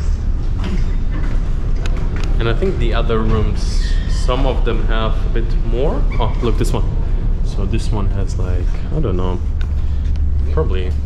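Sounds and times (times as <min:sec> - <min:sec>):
ship machinery rumble: 0:00.0 - 0:11.0.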